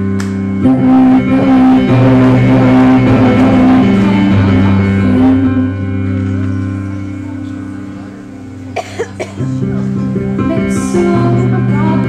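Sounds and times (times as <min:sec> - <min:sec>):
sustained keyboard chord: 0:00.0 - 0:12.0
audience member coughing: 0:08.6 - 0:10.0.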